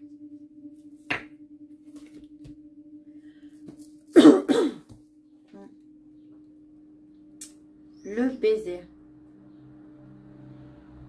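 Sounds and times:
steady low hum: 0.0 - 11.0
person coughing: 4.2 - 4.9.

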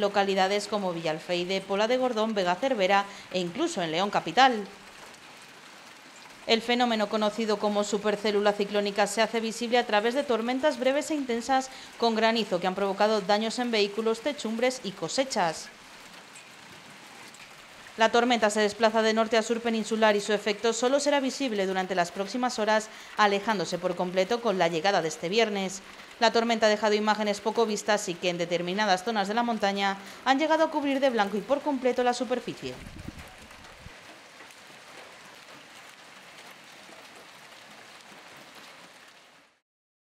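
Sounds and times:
hail falling on asphalt: 30.1 - 39.4.

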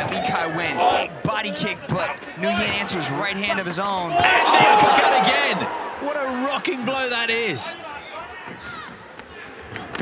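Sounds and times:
arena crowd noise: 0.0 - 10.0
people shouting: 4.1 - 6.3.

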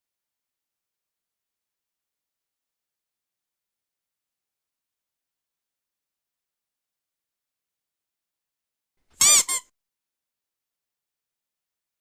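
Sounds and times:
high-pitched squeaks: 9.2 - 9.6.

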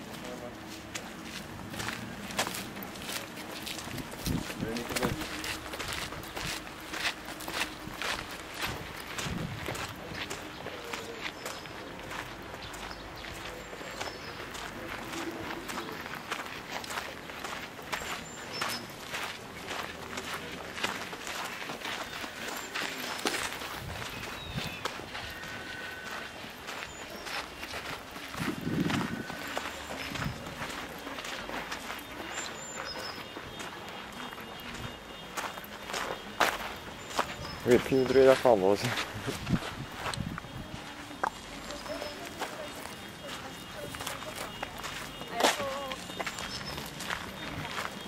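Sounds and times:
footsteps scuffing on path: 0.0 - 48.0.

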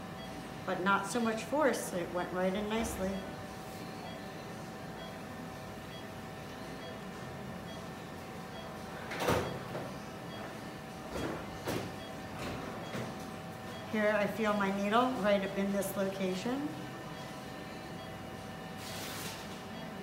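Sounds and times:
equipment hum: 0.0 - 20.0.

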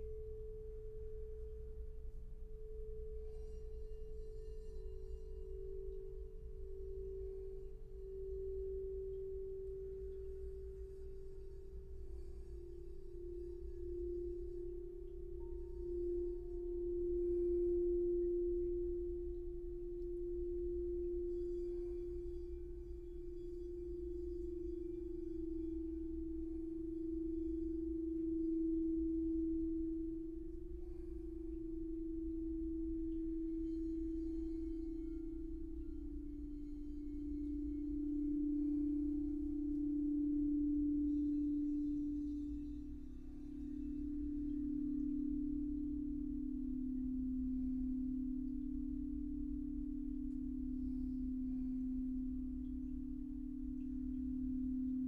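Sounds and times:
crystal singing bowls ringing: 0.0 - 55.0
faint low hum: 0.0 - 55.0.

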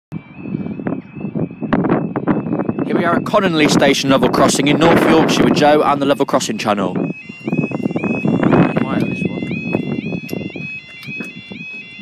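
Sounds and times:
road traffic rumble: 0.2 - 12.0.

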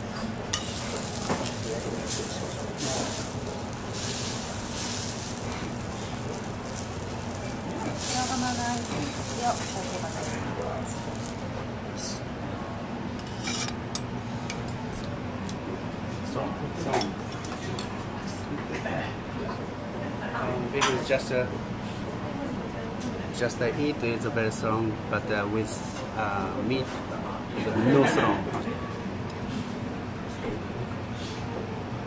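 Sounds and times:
food sizzling: 0.0 - 11.8
steady low hum: 0.0 - 16.8
dishes clinking: 0.1 - 3.6.

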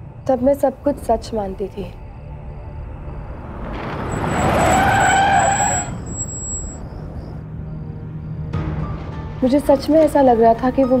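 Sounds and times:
brake squeal: 3.0 - 8.5.

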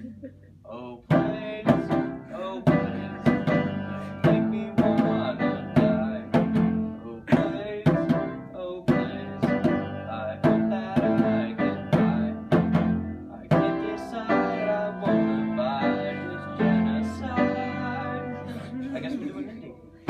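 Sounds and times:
piano chords: 0.0 - 20.0
hand drum rhythm: 1.1 - 13.8.

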